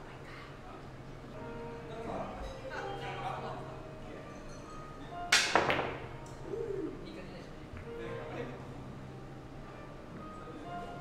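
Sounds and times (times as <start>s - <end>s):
cue striking ball click: 5.3s - 6.1s.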